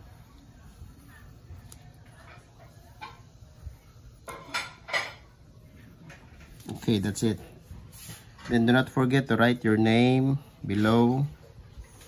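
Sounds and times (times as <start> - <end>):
pencil scratching on paper: 0.0 - 4.7, 5.7 - 8.8.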